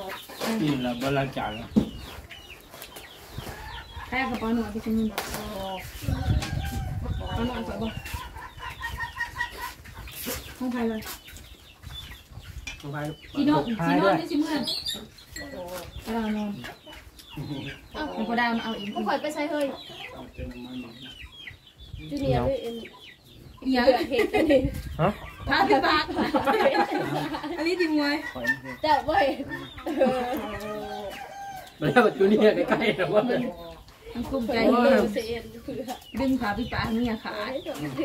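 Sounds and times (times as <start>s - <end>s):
chickens clucking: 0.0s - 38.0s
people chatting: 4.1s - 8.1s, 22.0s - 23.0s, 23.6s - 31.2s, 31.8s - 38.0s.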